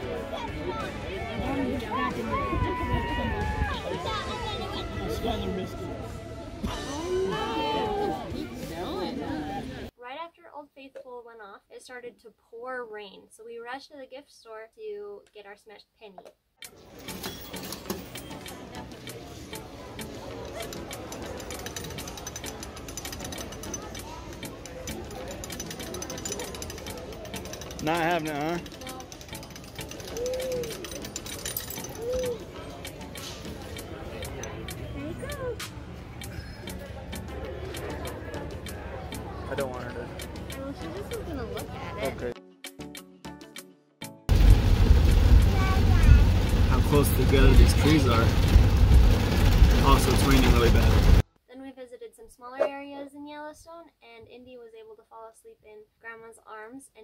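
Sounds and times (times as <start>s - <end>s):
faint voices: 0.0s - 9.9s, 18.3s - 42.3s
penny press gears grinding and clicking: 20.5s - 32.2s
car road noise in heavy rain: 44.3s - 51.2s.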